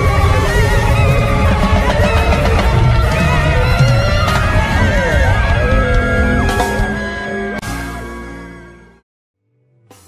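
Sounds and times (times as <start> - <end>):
reggae band playing: 0.1 - 8.0.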